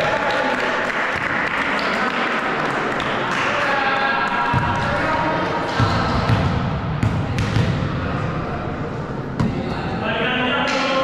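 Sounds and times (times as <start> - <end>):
voices in a hall: 0.0 - 11.0
volleyball bouncing on gym floor: 4.4 - 5.1, 5.7 - 7.9, 9.4 - 9.7.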